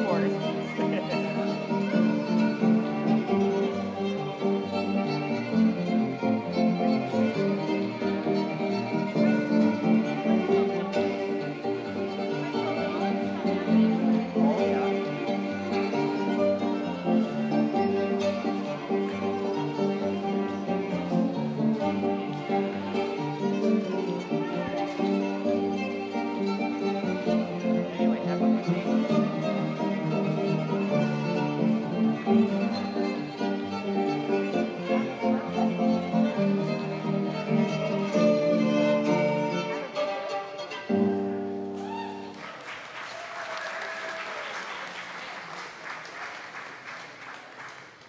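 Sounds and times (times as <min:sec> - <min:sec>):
fiddle playing a tune: 0:00.0 - 0:42.3.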